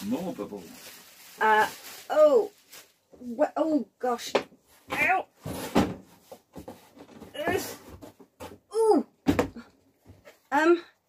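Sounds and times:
cardboard and plastic rustling: 0.0s - 3.4s, 4.0s - 8.7s.

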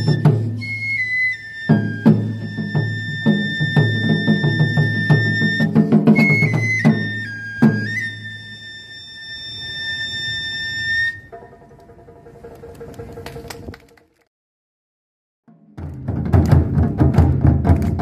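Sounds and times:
taiko drums: 0.0s - 1.0s, 1.6s - 8.3s, 11.3s - 13.6s, 15.5s - 18.0s
flute holding high notes: 0.0s - 11.6s.

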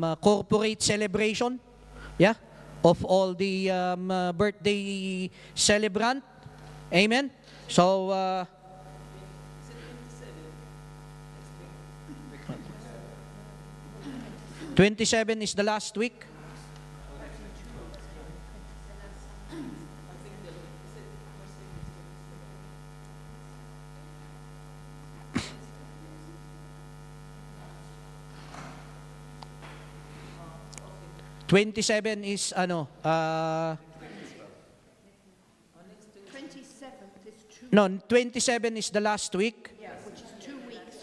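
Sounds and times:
electrical mains hum: 0.0s - 41.0s.

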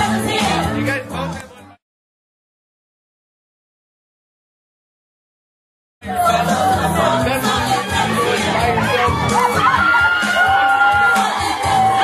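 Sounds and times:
women singing into microphones: 0.0s - 0.8s, 6.0s - 12.0s
amplified backing music: 0.0s - 1.8s, 6.0s - 12.0s
crowd cheering and shouting: 6.0s - 12.0s.

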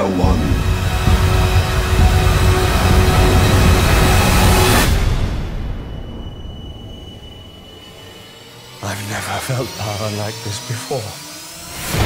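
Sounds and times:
deep rumble: 0.0s - 9.0s
dense orchestral trailer score: 0.0s - 12.0s.

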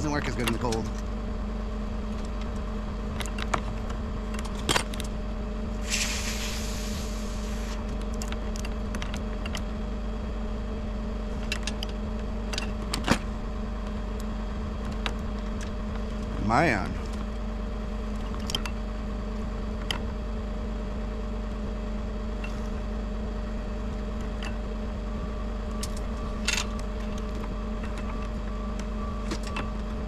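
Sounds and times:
truck engine idling: 0.0s - 30.0s
brief hiss: 5.8s - 7.8s.

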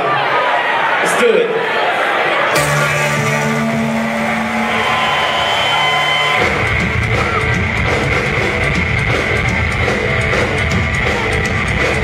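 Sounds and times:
sustained ringing notes: 2.5s - 7.1s
drums: 2.5s - 12.0s
live rock band playing: 2.5s - 12.0s.

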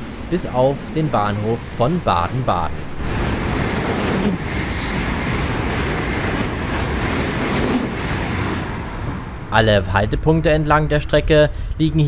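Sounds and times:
high-speed train passing: 0.0s - 12.0s.

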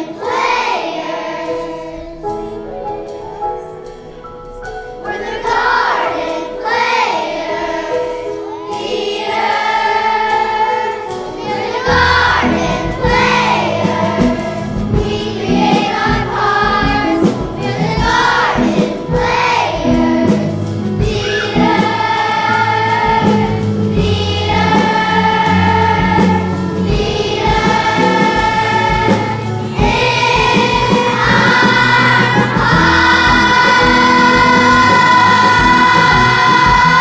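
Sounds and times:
band accompanying: 0.0s - 37.0s
children's choir singing: 0.0s - 37.0s.

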